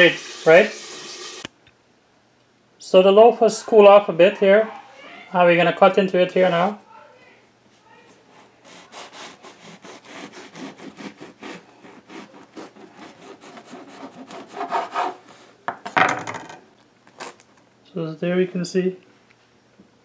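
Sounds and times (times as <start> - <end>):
knife sawing through bread: 8.3 - 15.5.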